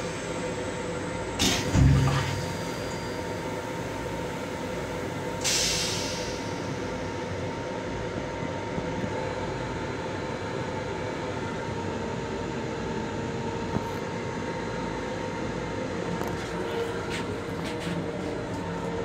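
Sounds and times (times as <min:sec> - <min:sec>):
train interior rush and hum: 0:00.0 - 0:19.0.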